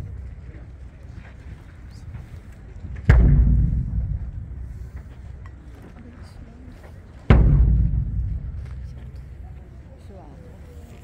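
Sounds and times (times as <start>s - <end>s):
deep drum booms: 3.0s - 5.4s, 7.2s - 9.6s.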